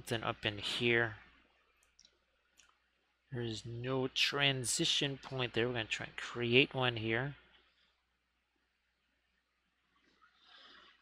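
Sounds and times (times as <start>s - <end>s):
man speaking: 0.0s - 1.4s, 3.3s - 7.5s.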